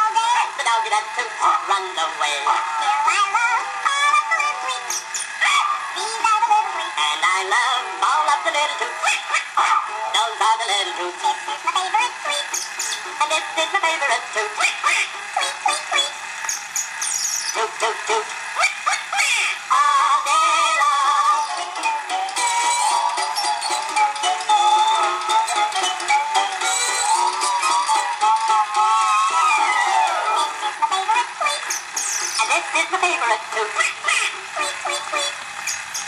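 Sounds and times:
tinny gramophone music: 0.0 - 36.0.

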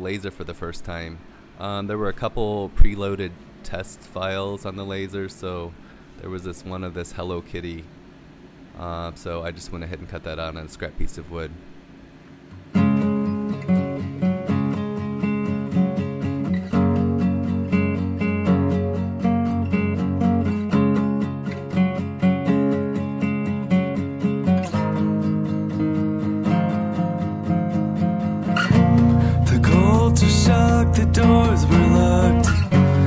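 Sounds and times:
strummed guitar music: 12.5 - 33.0.

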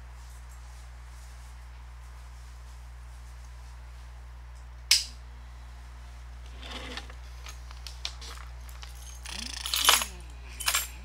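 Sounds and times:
steady low hum: 0.0 - 11.0
metallic clinks: 8.3 - 11.0.

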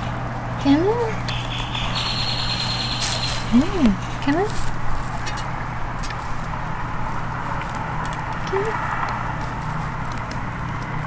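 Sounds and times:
high-pitched whine: 0.0 - 4.5
low machine hum: 0.0 - 11.0.

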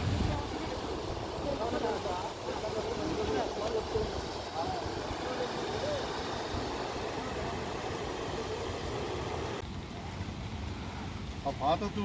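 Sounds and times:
faint voices: 0.0 - 11.2
water rushing through spillway: 0.0 - 12.0.

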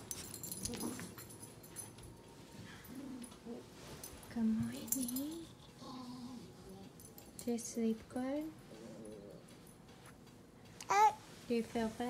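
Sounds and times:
bedding rustling: 0.0 - 5.6.

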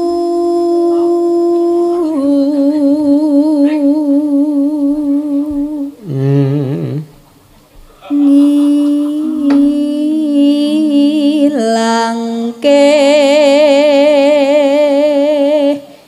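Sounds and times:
lower voice singing: 0.0 - 7.2, 8.0 - 16.0
person singing long wavering notes: 0.0 - 7.2, 8.1 - 15.9.

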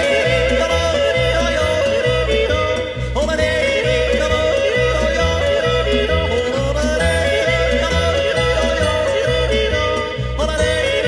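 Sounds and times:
bouncing bass accompaniment: 0.0 - 11.0
person yodelling: 0.0 - 11.0.

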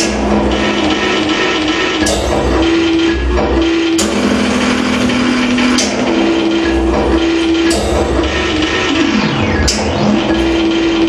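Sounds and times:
dense electronic noise music: 0.0 - 11.0
sharp hit: 0.0 - 11.0
steady low drone: 0.0 - 11.0.

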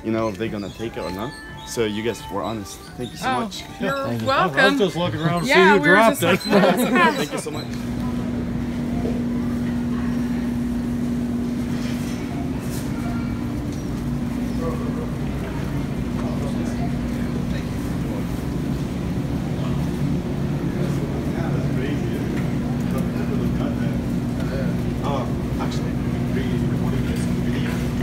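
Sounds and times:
refrigerated display cases humming: 0.0 - 28.0
store background noise: 0.0 - 28.0.

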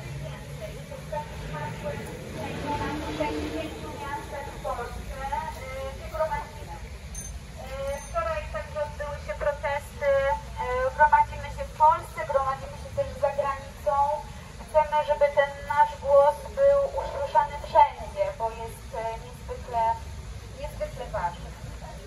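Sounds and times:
woman speaking through megaphone: 0.0 - 7.0, 7.6 - 20.0, 20.6 - 22.0.

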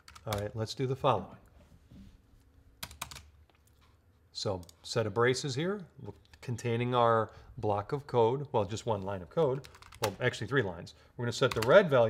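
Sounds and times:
computer keyboard keystrokes: 0.0 - 0.5, 2.8 - 3.3, 9.6 - 10.2, 11.5 - 11.8.

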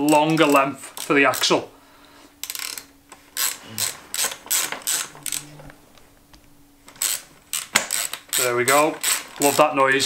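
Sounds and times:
ratchet wrench clicking: 2.4 - 5.4, 7.0 - 9.8.

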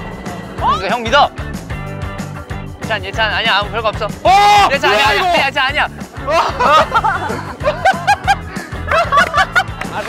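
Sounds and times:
background music with steady beat: 0.0 - 10.0
young men laughing: 4.4 - 10.0.

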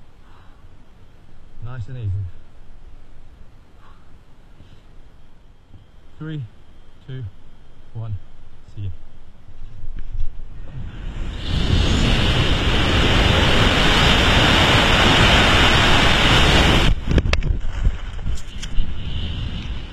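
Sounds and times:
wind rushing over microphone: 9.8 - 19.9.

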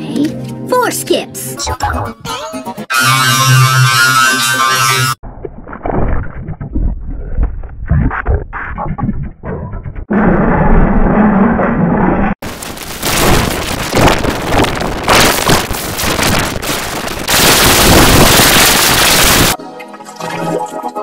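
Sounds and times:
distorted cartoon soundtrack: 1.6 - 5.2, 14.7 - 19.6
harsh noise-like distortion: 12.4 - 19.6.

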